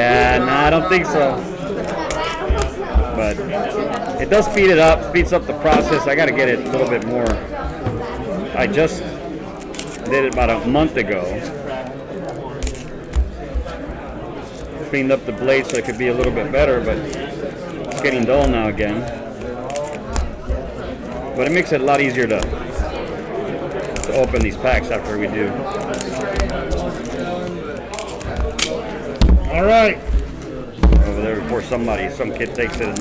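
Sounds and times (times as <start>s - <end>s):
faint voices: 0.0s - 33.0s
quiet indistinct speech: 0.0s - 33.0s
knife cutting foil: 13.7s - 29.1s
foil packs being handled: 31.1s - 33.0s.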